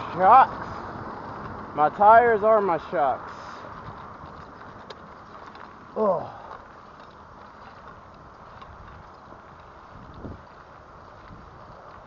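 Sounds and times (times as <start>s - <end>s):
bike road noise on asphalt: 0.0s - 12.0s.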